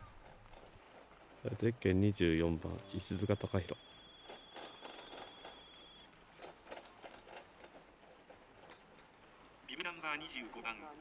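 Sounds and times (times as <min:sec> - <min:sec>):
high-pitched tone: 0:02.8 - 0:06.0.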